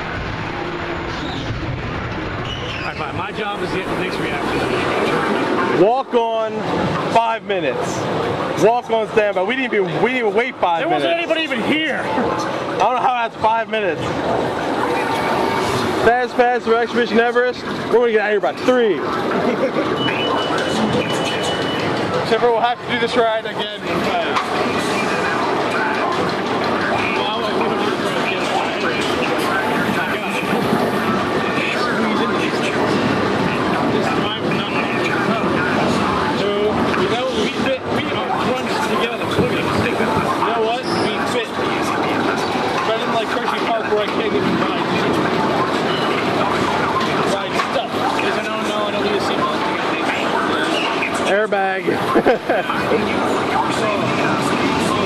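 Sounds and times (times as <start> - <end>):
spinning coaster car running: 0.0 - 55.0
riders' voices: 2.4 - 55.0.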